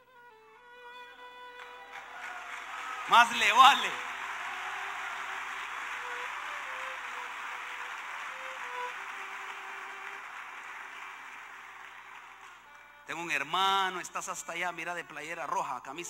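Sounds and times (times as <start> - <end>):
crowd applauding: 1.5 - 13.5
violin sustained notes: 3.1 - 10.5.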